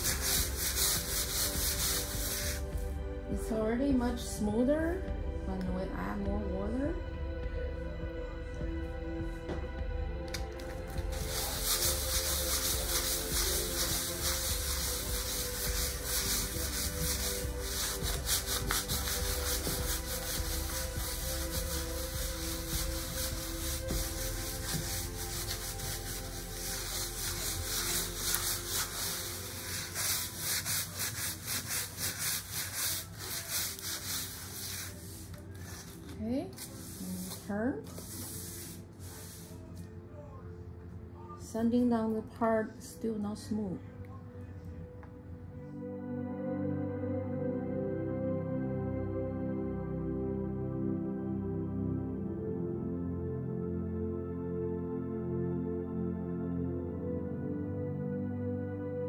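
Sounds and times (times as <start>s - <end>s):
sanding block rasping on panel: 0.0s - 2.7s, 11.1s - 36.0s.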